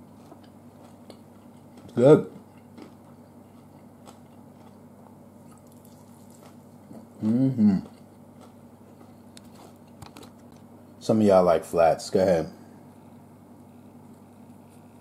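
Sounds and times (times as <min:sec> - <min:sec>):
man chewing crispy food: 0:00.0 - 0:10.7
man humming mmm: 0:06.9 - 0:08.0.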